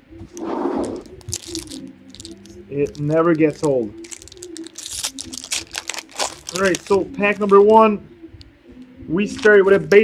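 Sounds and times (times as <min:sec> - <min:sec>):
packaging crackling and clicks: 0:00.4 - 0:07.6.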